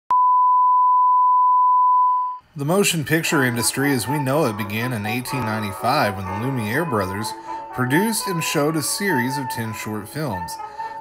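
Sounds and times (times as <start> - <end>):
steady sine test tone: 0.1 - 2.4.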